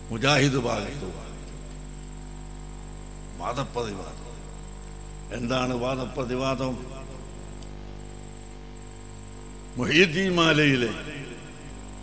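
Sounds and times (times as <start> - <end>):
steady high-pitched whine: 0.0 - 12.0
man speaking: 0.1 - 1.4, 3.4 - 4.2, 5.3 - 7.1, 9.8 - 11.5.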